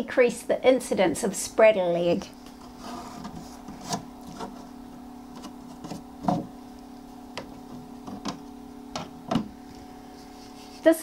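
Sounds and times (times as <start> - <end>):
egg incubator humming: 0.0 - 11.0.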